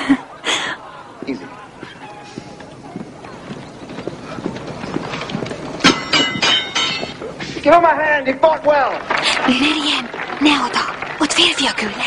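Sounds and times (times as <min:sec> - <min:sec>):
horses' hooves beating: 0:00.8 - 0:12.0
ringing metal clashes: 0:05.8 - 0:07.2.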